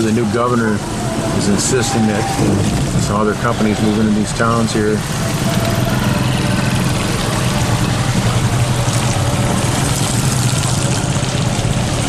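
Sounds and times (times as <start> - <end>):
road noise on wet road: 0.0 - 12.0
vehicle engine running: 0.0 - 12.0.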